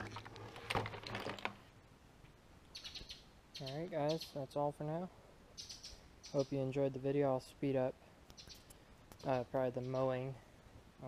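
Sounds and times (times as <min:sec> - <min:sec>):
faint bird chirps: 0:02.7 - 0:04.4, 0:05.5 - 0:06.7, 0:08.3 - 0:10.4.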